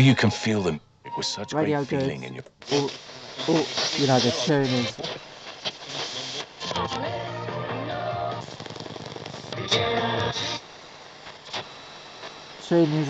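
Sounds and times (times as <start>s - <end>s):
radio static: 1.3s - 13.0s
radio music snatches: 1.8s - 13.0s.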